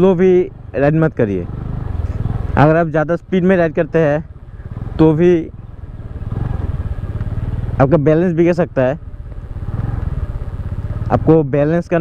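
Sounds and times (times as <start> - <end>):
scooter engine running: 1.3 - 11.4.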